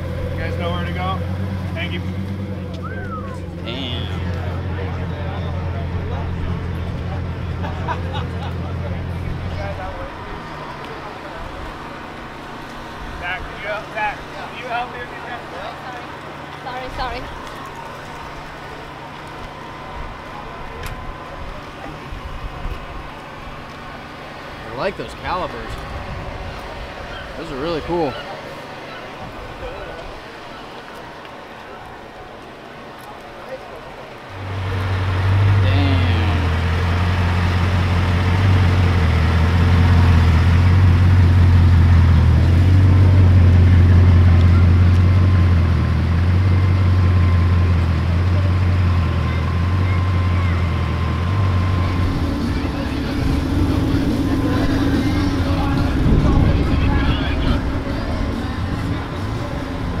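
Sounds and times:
car engine idling: 0.0s - 32.8s, 33.8s - 60.0s
crowd chatter: 0.0s - 60.0s.

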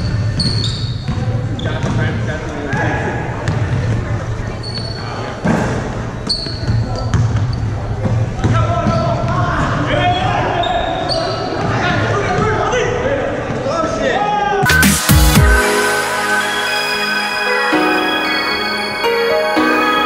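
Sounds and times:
sneakers squeaking: 0.0s - 12.5s.

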